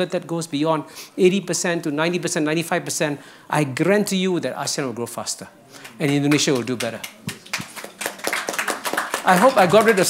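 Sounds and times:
scattered applause: 5.8s - 10.0s.

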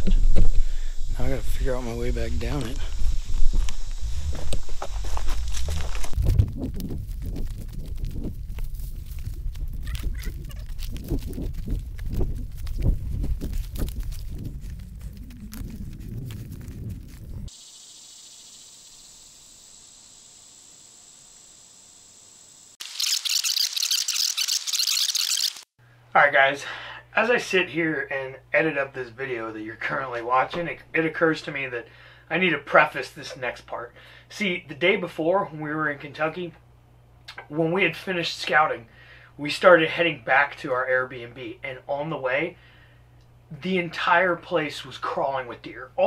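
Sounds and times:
high hiss: 0.0s - 6.1s, 17.5s - 25.7s
microphone rubbing and rumbling: 0.0s - 17.5s
footsteps crunching through leaves: 2.6s - 17.5s.

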